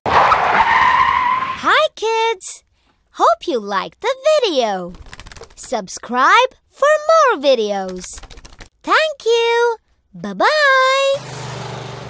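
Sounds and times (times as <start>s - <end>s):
cartoon tyre screech: 0.1s - 1.6s
high cartoon-like voice speaking: 1.6s - 2.6s, 3.2s - 4.9s, 5.6s - 8.2s, 8.8s - 11.2s.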